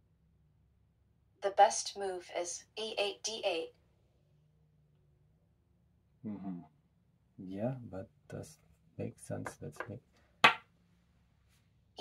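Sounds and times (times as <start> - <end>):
chess piece knocking wooden board: 9.4 - 10.6.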